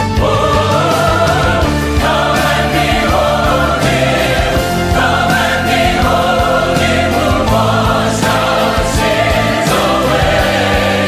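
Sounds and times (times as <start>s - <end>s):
choir singing held chords: 0.0s - 11.0s
orchestral accompaniment: 0.0s - 11.0s.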